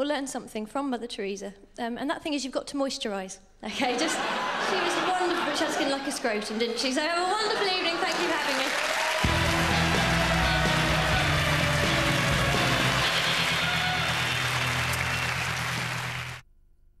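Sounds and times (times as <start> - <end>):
audience applauding: 7.4 - 16.4
play-off music: 9.2 - 16.4.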